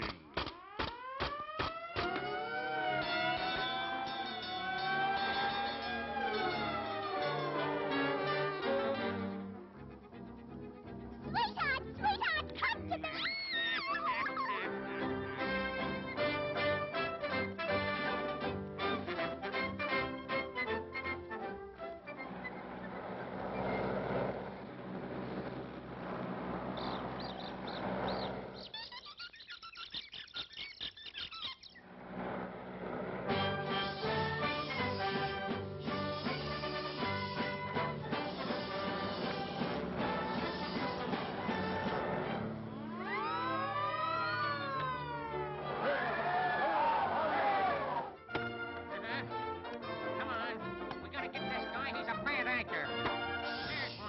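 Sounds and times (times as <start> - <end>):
cartoon police siren wailing: 0.6 - 9.2, 11.3 - 18.4, 33.4 - 41.9, 42.8 - 48.2
rushing drone: 22.3 - 28.6, 31.9 - 35.4
cartoon chirps whistles and clicks: 26.8 - 31.8, 53.2 - 54.0.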